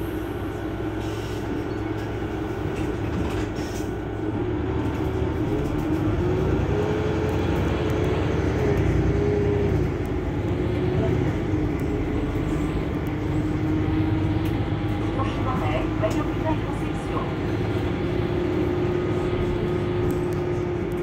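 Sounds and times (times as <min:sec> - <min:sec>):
bus diesel engine idling: 0:00.0 - 0:21.0.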